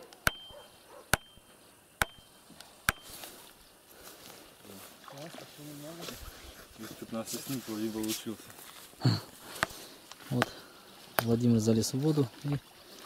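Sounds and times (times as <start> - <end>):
hammer striking wooden stake: 0.0 - 3.3.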